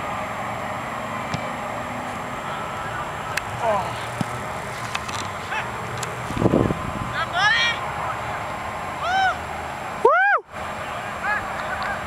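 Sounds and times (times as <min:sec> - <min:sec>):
people whooping and yelling: 0:09.0 - 0:12.0.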